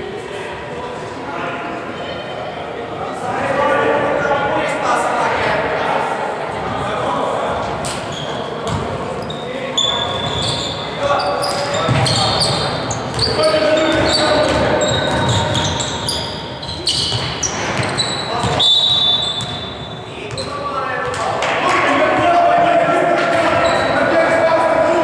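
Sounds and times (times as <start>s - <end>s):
sneaker squeaks: 7.7s - 21.3s, 23.3s - 24.2s
players calling out: 8.1s - 25.0s.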